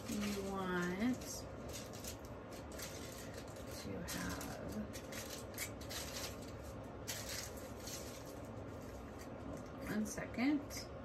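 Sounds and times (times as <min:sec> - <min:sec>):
rustling of container and paper: 0:00.0 - 0:09.6
low steady hum: 0:00.0 - 0:11.0.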